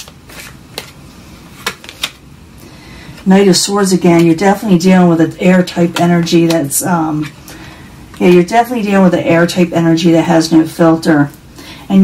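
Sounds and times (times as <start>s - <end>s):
cards snapping: 0.0s - 1.0s, 1.6s - 2.2s
cards rustling: 0.0s - 2.2s.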